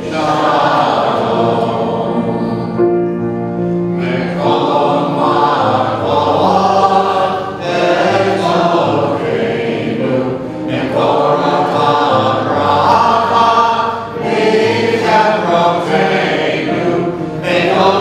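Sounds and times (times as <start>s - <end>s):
congregation singing: 0.0s - 18.0s
piano accompaniment: 0.0s - 18.0s.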